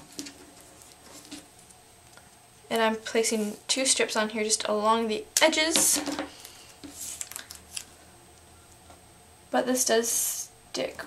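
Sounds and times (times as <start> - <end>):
paper rustling: 6.4 - 7.9.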